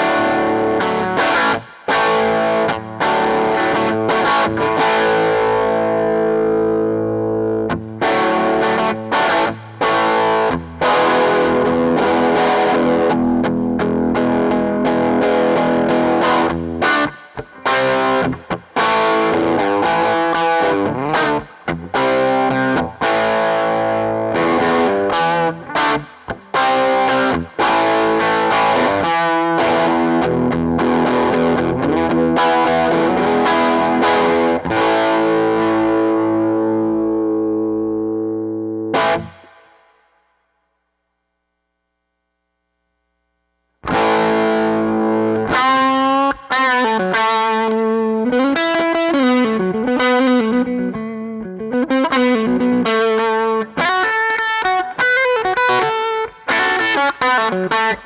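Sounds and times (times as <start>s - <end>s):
electric guitar lead with bends: 0.0s - 40.1s, 43.8s - 58.0s
overdriven electric guitar chords: 0.0s - 40.9s, 41.7s - 58.0s.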